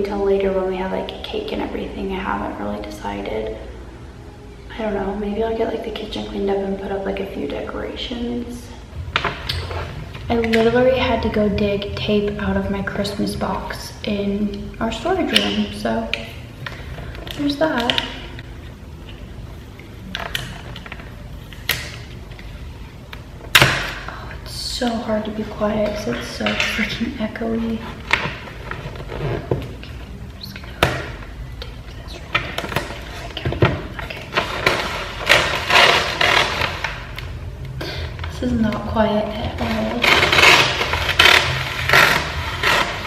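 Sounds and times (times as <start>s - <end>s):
sticky tape ripping: 34.0s - 37.4s, 39.6s - 43.0s.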